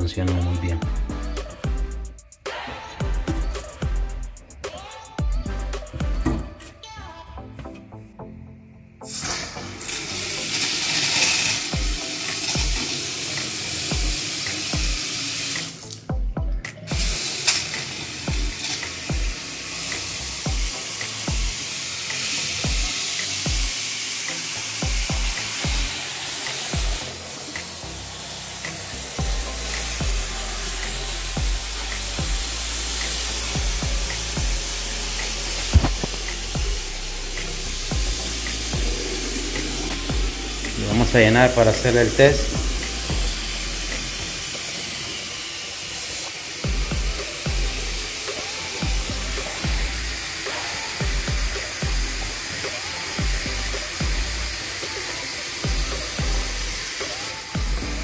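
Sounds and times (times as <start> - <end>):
water running into sink: 9.1 - 16.2, 16.8 - 58.0.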